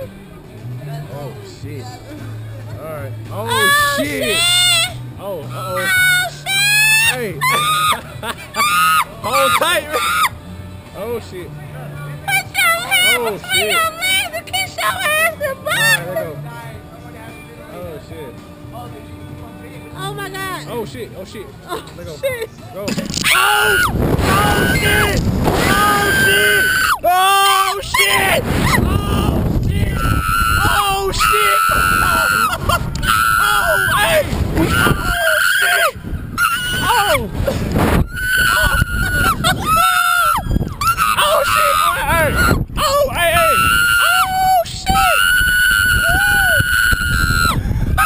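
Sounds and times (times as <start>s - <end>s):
background music: 0.0s - 48.0s
woman screaming: 3.5s - 5.0s, 8.6s - 10.3s, 23.2s - 29.2s, 30.0s - 37.2s, 38.1s - 47.6s
wind rumbling on microphone: 22.9s - 48.0s.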